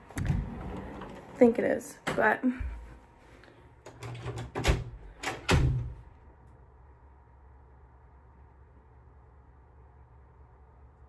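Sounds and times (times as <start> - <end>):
door thudding shut: 4.6 - 6.0.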